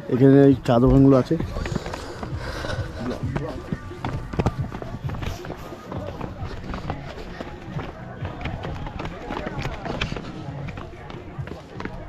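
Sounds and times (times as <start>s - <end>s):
background music: 0.0s - 12.0s
footsteps on dirt path: 0.0s - 12.0s.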